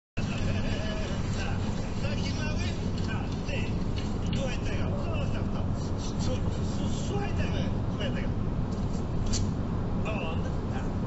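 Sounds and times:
faint voices talking: 0.2s - 8.4s
car road and engine rumble: 0.2s - 11.0s.

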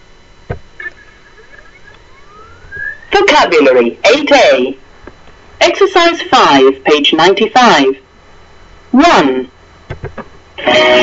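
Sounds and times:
rising electronic tone: 1.9s - 3.2s.

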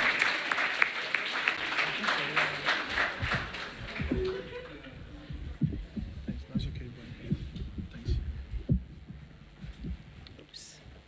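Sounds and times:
microphone handling thumps: 3.2s - 11.0s.

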